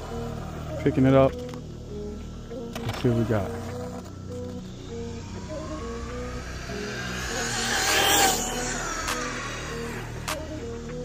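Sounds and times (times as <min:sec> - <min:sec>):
background music: 0:00.0 - 0:11.0
toy truck motor whining: 0:01.4 - 0:11.0.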